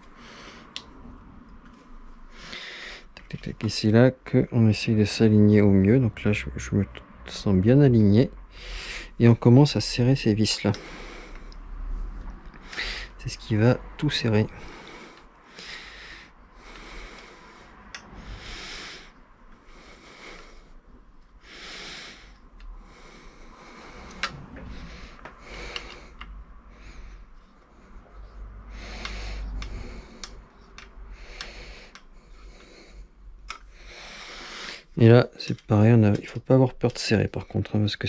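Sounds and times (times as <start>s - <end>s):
person breathing close: 0.0s - 3.3s, 8.4s - 9.2s, 10.2s - 35.0s.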